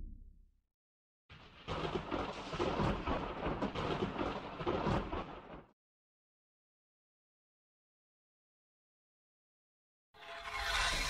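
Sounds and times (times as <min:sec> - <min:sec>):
crackling thunder rumble: 0:01.4 - 0:05.7.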